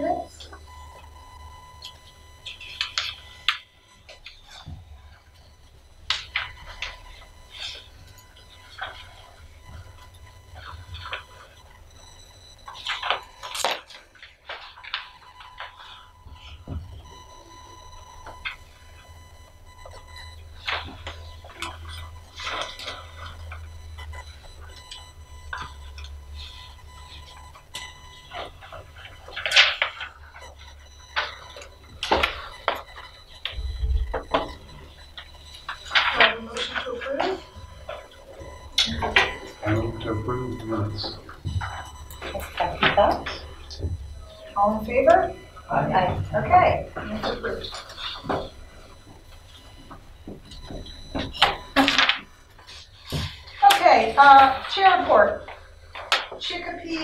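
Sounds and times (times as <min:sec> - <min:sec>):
low hum: 0:00.0 - 0:57.0.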